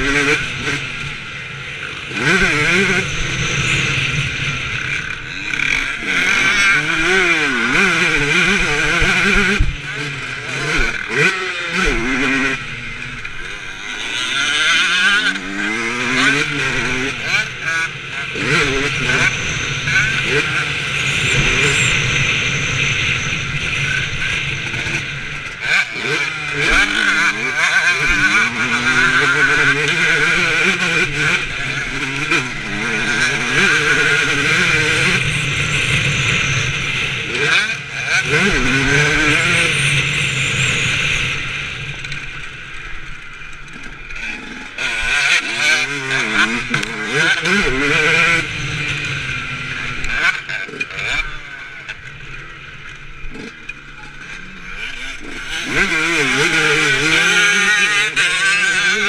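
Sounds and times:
dirt bike engine revving: 0.0s - 59.0s.

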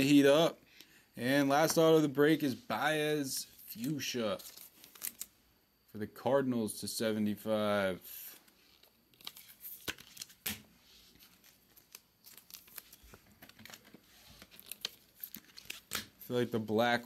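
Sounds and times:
foil wrapper crinkling: 4.3s - 5.3s, 8.3s - 17.0s
cards rustling and tapping: 8.6s - 16.3s.

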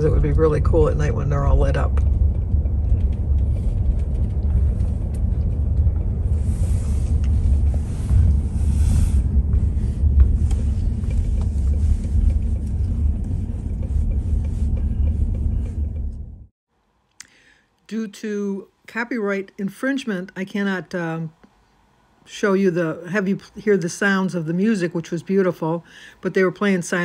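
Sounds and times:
car cabin road rumble: 0.0s - 16.5s.

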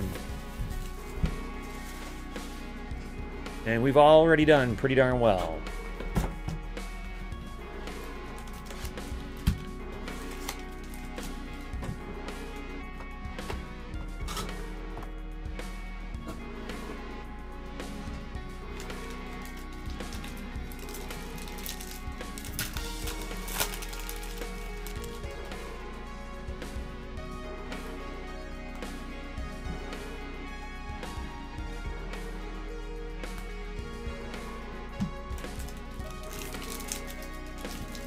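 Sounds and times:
soft background music: 0.0s - 38.0s
cardboard box and foil rustling: 18.8s - 25.2s, 35.4s - 38.0s.

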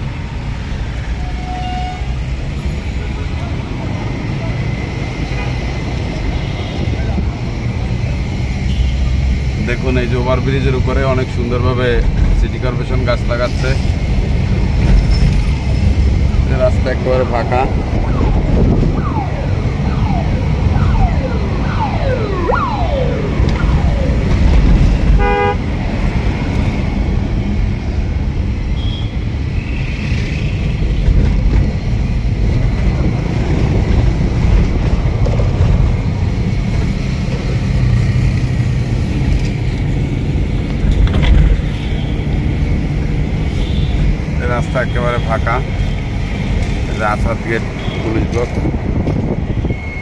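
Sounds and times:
engine and road rumble: 0.0s - 50.0s
siren wailing: 17.2s - 25.4s.

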